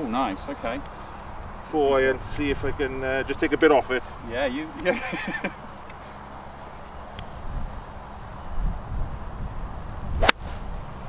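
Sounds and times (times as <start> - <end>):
golf club striking ball: 10.2 - 10.5
golf club swish: 10.2 - 10.7.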